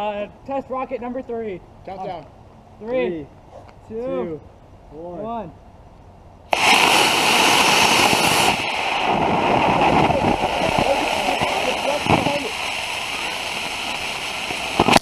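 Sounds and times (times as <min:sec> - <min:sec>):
sharp pop: 0:06.5 - 0:12.4, 0:14.8 - 0:15.0
rocket motor rushing hiss: 0:06.5 - 0:15.0.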